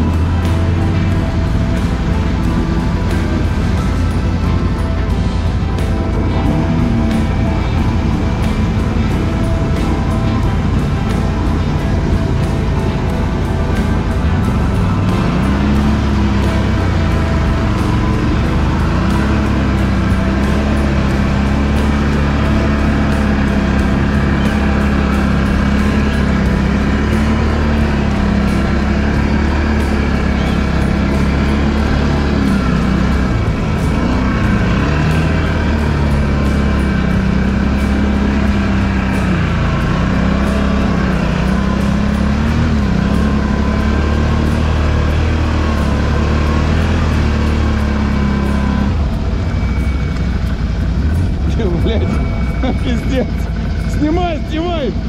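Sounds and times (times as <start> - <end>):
atv engine running under load: 0.0 - 55.0.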